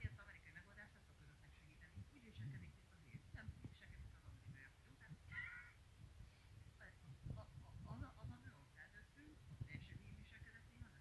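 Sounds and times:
woman speaking quietly: 0:00.0 - 0:05.8, 0:06.6 - 0:11.0.

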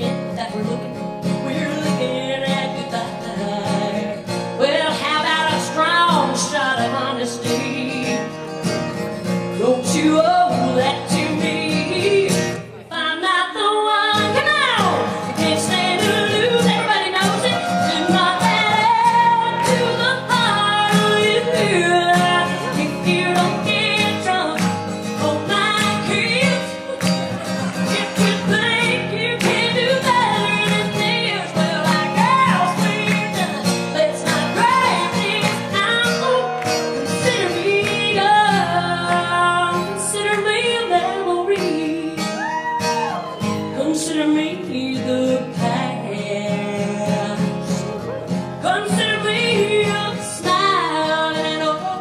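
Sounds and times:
woman singing country ballad: 0:00.0 - 0:52.0.

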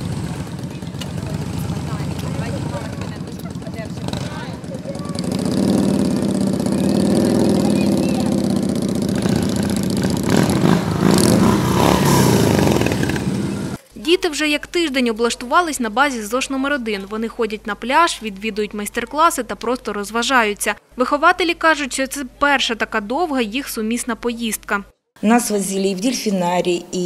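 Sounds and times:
motorcycle engines running: 0:00.0 - 0:13.8.

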